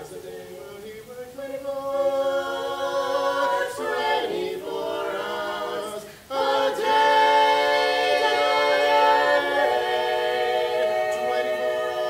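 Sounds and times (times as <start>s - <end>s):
a cappella group singing harmony: 0.0s - 12.0s.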